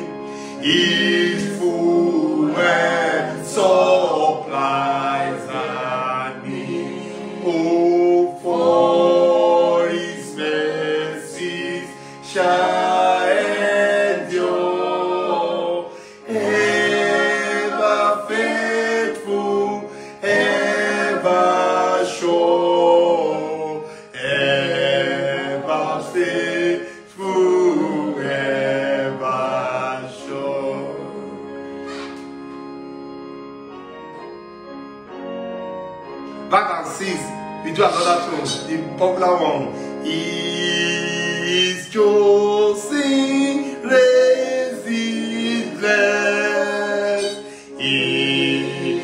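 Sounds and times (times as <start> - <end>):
man singing a hymn: 0.0 - 31.2, 36.5 - 49.0
breaths: 0.2 - 0.6, 11.9 - 12.2, 15.9 - 16.3, 19.9 - 20.2, 23.8 - 24.2, 39.7 - 40.0, 47.4 - 47.8.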